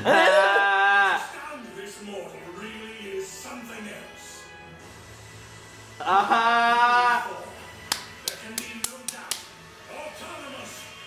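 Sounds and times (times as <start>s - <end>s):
person clapping: 7.8s - 9.6s.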